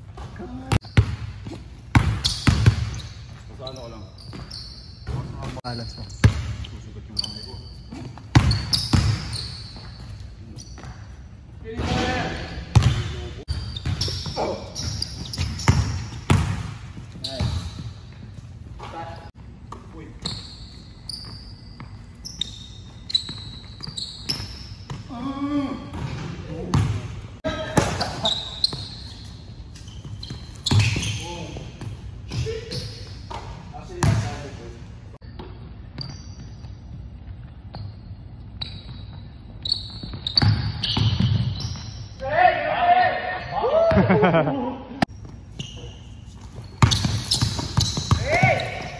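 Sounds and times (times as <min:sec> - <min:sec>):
basketball bouncing on hardwood floor: 0:01.9 - 0:02.9, 0:08.3 - 0:09.9, 0:15.2 - 0:17.8, 0:46.8 - 0:48.9.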